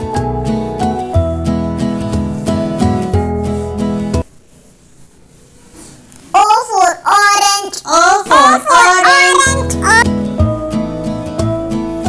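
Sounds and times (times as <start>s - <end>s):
child singing: 6.8s - 10.0s.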